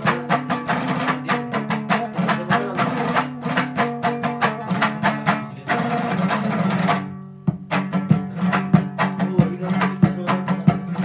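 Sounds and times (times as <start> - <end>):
lute strummed fast: 0.0 - 11.0.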